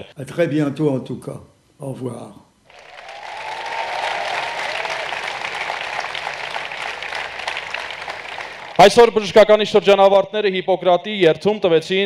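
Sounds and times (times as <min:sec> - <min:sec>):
large audience applauding: 0:02.7 - 0:09.1.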